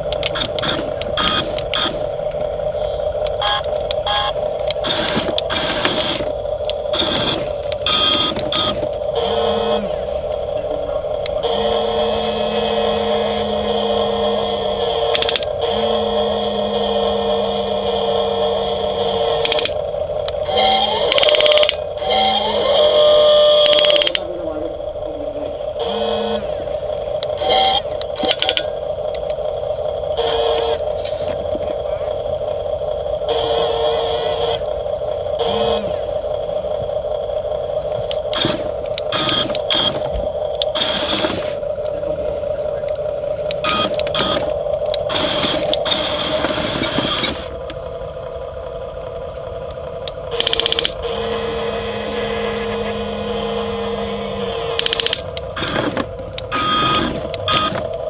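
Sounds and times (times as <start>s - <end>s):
toy excavator motors whirring: 0.0s - 58.0s.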